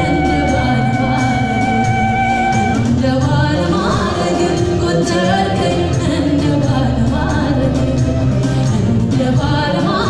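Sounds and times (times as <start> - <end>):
woman singing gospel: 0.0 - 1.9, 3.0 - 10.0
instrumental backing: 0.0 - 10.0.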